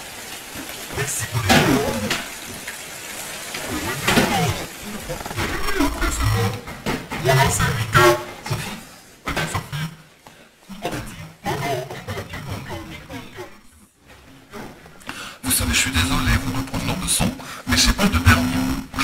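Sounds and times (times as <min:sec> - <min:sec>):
person speaking: 0:00.9 - 0:02.4, 0:03.6 - 0:10.1, 0:10.7 - 0:13.8, 0:15.4 - 0:19.0.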